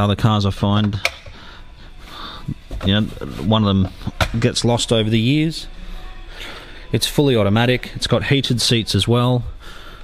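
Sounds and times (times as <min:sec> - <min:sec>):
man speaking: 0:02.7 - 0:05.7, 0:06.9 - 0:09.6.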